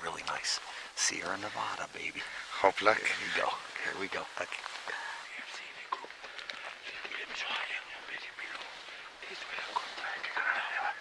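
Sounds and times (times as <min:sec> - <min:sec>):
footsteps: 0:00.0 - 0:10.9
rustling of dry scrub: 0:00.0 - 0:11.0
whispered voices: 0:00.0 - 0:11.0.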